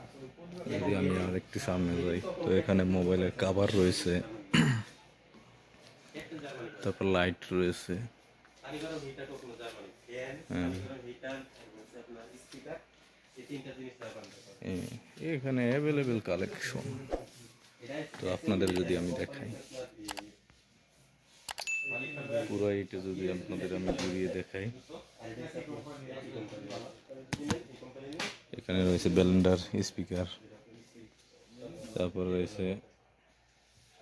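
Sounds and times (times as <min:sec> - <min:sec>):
man clearing his throat: 0:04.5 - 0:05.0
high bell ding: 0:21.6 - 0:22.6.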